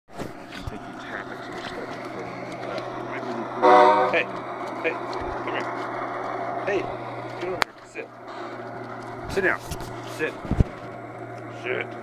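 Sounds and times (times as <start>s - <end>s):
model locomotive hum: 0.2s - 12.0s
locomotive horn toot: 3.1s - 4.4s.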